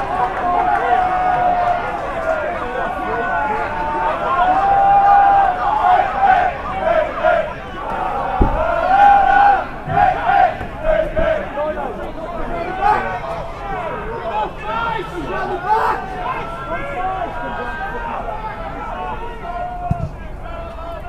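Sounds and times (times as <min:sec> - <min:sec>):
crowd and players shouting: 0:00.0 - 0:21.0
dull thud: 0:08.3 - 0:09.2.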